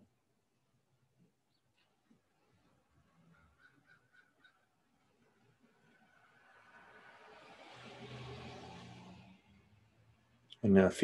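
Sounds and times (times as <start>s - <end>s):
faint passing motor vehicle: 2.2s - 11.0s.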